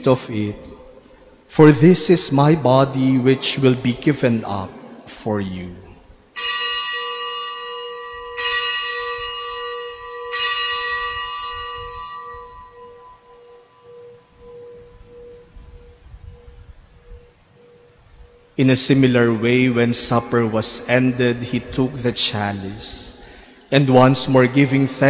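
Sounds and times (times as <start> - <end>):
bell strikes: 6.4 - 15.5.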